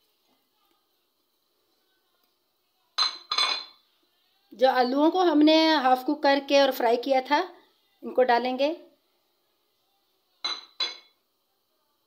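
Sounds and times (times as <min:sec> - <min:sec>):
plate clinking against metal pot: 0:03.0 - 0:03.7, 0:10.4 - 0:11.1.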